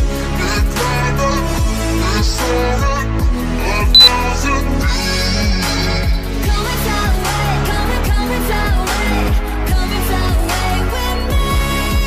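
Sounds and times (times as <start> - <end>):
pop music with bass drum: 4.0 - 4.2, 5.5 - 12.0
short high beep: 4.0 - 4.2.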